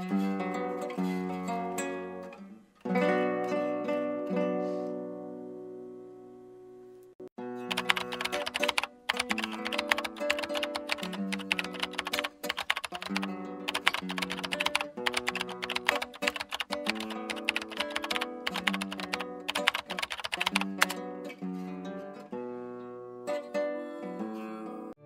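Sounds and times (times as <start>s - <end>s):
music with held notes: 0.0s - 6.7s, 7.4s - 25.0s
rapid typing clicks: 7.7s - 21.0s.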